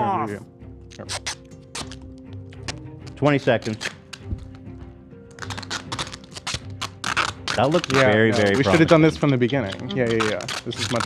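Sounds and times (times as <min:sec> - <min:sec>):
background music: 0:00.0 - 0:11.0
package crinkling and clicking: 0:01.2 - 0:04.6, 0:05.3 - 0:11.0.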